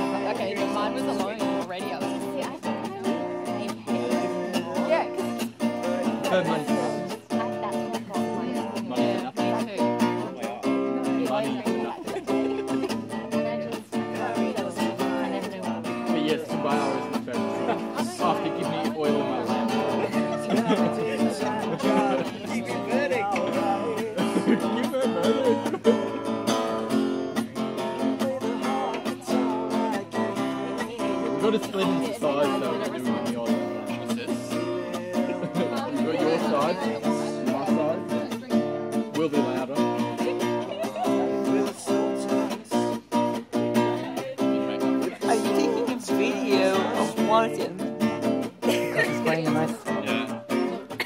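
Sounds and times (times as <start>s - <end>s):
acoustic guitar chords: 0.0s - 51.0s.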